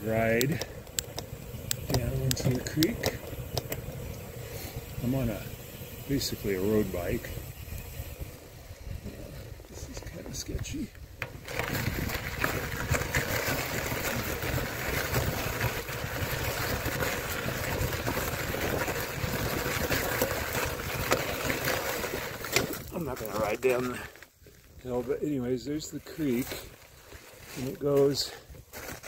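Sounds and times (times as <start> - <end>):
tyres crunching over gravel: 0.0 - 8.5, 9.3 - 29.0
bicycle tyres rolling on asphalt: 0.0 - 29.0.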